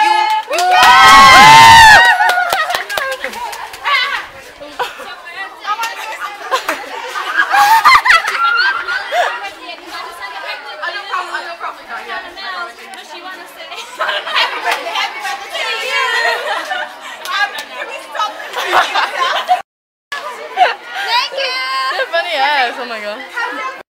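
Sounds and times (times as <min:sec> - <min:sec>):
girls chattering: 0:02.6 - 0:19.6, 0:20.2 - 0:23.8.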